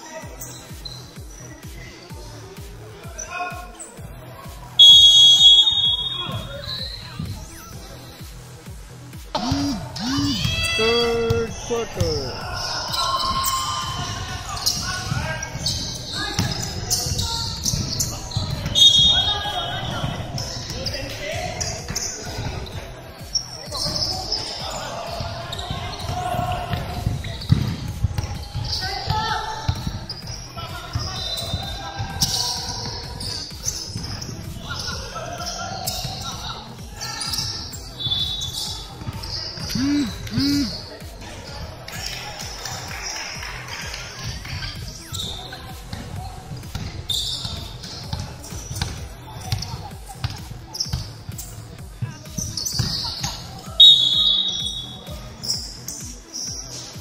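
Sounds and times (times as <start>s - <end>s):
players shouting: 9.4s - 15.7s, 18.6s - 20.3s, 39.6s - 40.8s
basketball bouncing on hardwood: 26.7s - 28.3s.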